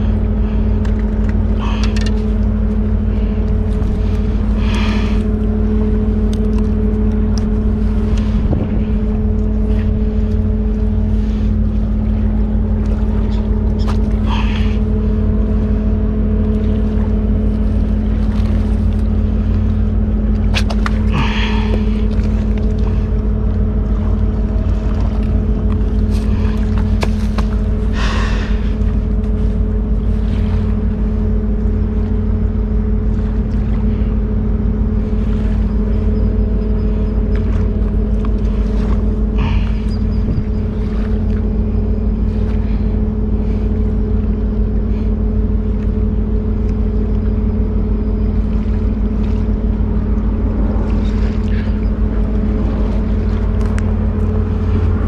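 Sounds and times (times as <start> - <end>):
low engine drone: 0.0 - 55.0.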